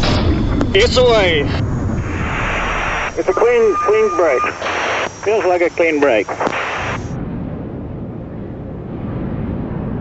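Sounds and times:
air rushing over airframe: 0.0 - 5.3
aircraft rumble in flight: 0.0 - 10.0.

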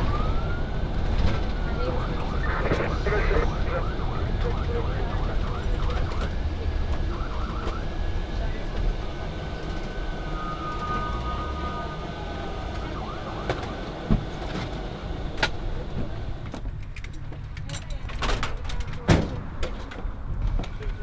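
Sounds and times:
ambulance siren: 0.0 - 8.4, 9.6 - 14.6
engine and road rumble: 0.0 - 21.0.

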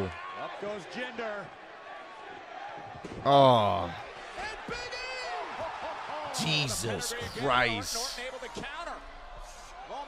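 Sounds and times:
arena crowd noise: 0.0 - 10.0
man commentating: 6.2 - 9.1.

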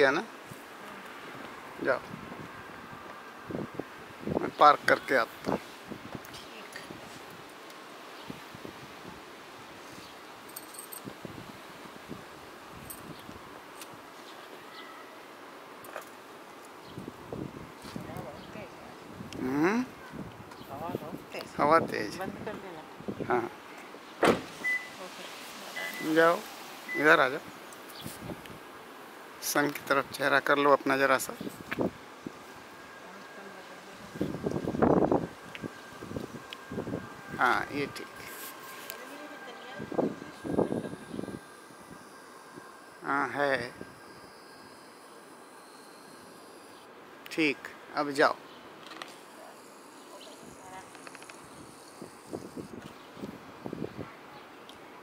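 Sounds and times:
car door shutting: 24.2 - 24.9
faint buzz: 31.4 - 47.0.

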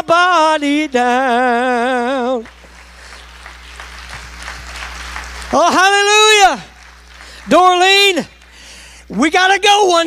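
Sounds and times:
congregation applauding: 1.5 - 9.8.

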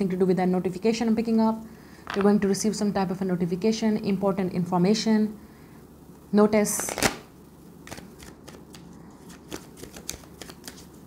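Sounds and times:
cards being shuffled by hand: 6.7 - 7.2, 7.8 - 11.0.

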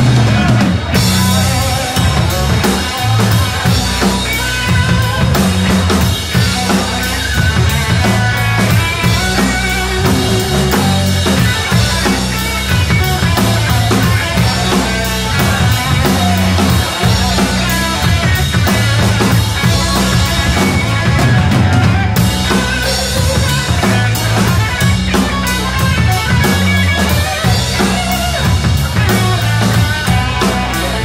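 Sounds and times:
drum kit with cymbals: 0.0 - 31.0
electric guitars: 0.0 - 31.0
low bass notes: 0.0 - 31.0.

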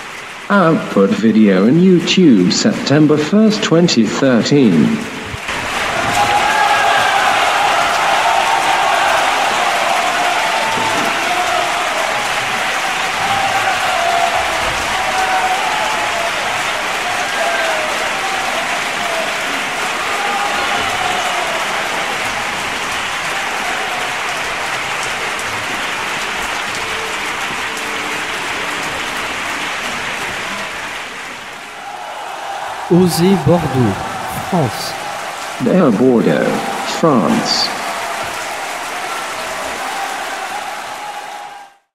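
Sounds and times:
large audience applauding: 0.0 - 2.5, 4.6 - 41.9
people cheering: 5.4 - 41.9.

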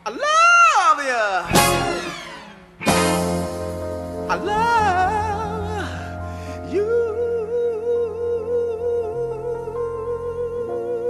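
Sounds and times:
sustained backing chords: 1.5 - 11.0.

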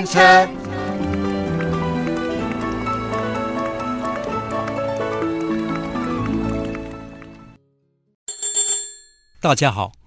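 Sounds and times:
theme music: 0.0 - 7.8
bicycle bell ringing: 8.3 - 9.4.

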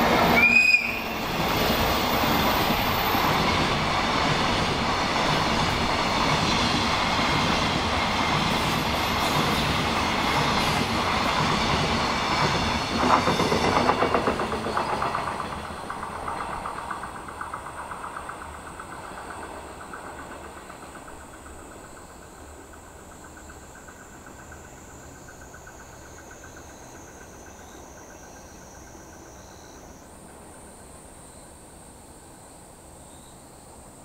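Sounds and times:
train wheels clattering on rails: 0.0 - 31.0.

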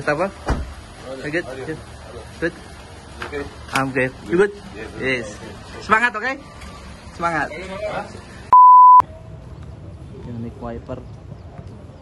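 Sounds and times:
censor bleep: 8.5 - 9.0.

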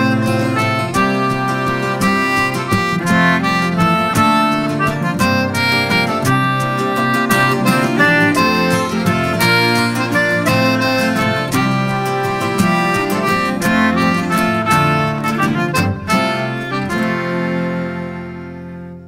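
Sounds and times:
reedy lead melody: 0.0 - 19.0
rhythmic strumming: 0.0 - 19.0.

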